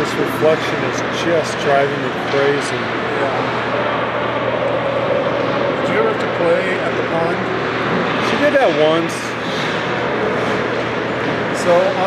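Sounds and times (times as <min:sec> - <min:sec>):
voices at ice rink: 0:00.0 - 0:12.0.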